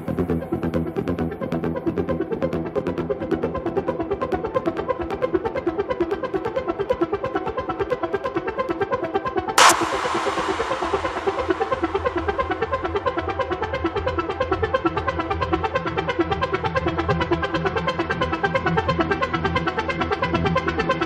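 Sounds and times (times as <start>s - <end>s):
techno synthesizer pattern: 9.6s - 12.8s
low bass drone: 9.6s - 13.1s
crash cymbal tail: 9.6s - 13.3s.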